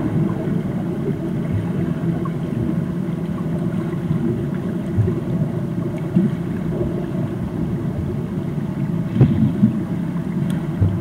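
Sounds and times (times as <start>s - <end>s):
underwater swimming churn: 0.0s - 11.0s.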